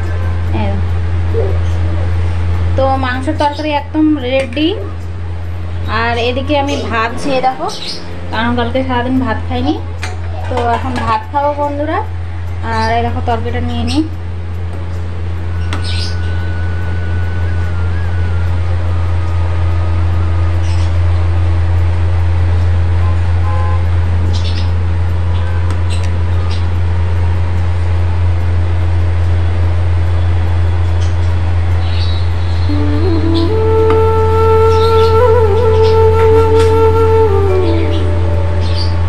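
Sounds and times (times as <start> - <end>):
loud low hum: 0.0 - 39.0.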